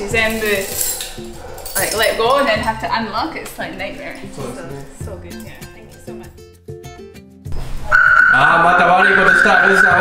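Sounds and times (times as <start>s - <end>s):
background music: 0.0s - 10.0s
light metallic clinking: 0.1s - 2.8s.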